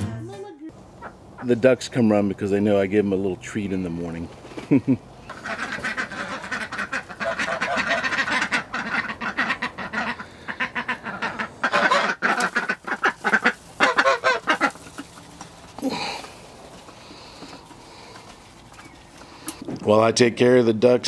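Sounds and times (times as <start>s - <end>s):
ducks quacking: 0.9s - 1.7s, 5.2s - 19.6s
goose honking: 5.3s - 15.5s.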